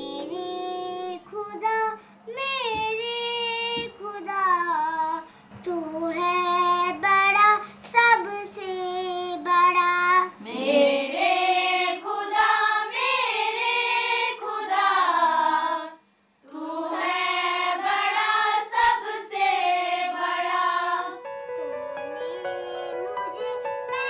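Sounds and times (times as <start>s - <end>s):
girls singing together: 10.2s - 21.2s.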